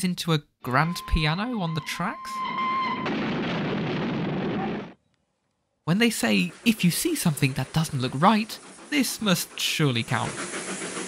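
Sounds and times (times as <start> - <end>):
explosion rush of noise: 2.9 - 5.0.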